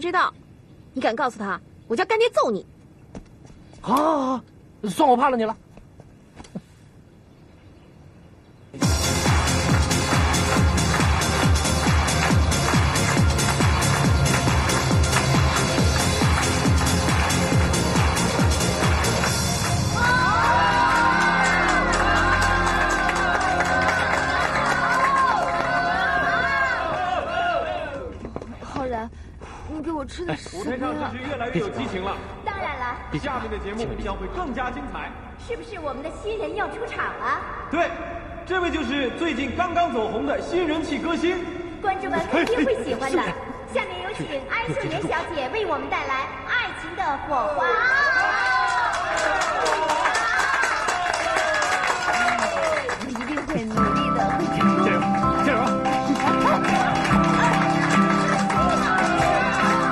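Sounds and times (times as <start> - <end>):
audience clapping: 8.8 - 27.1, 48.1 - 59.9
audience cheering and calling out: 9.2 - 28.2, 47.6 - 59.9.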